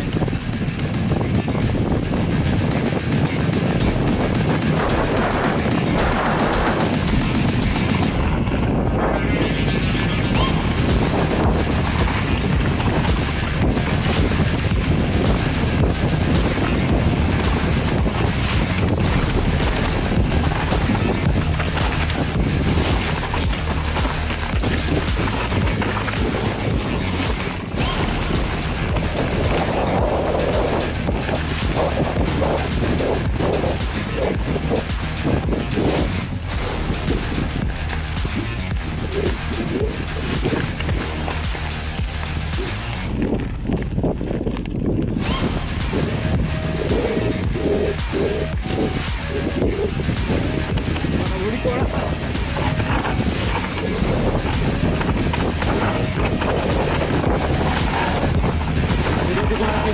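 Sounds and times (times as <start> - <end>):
mountain bike tyres crunching: 0.0 - 59.9
wind on microphone: 0.0 - 59.9.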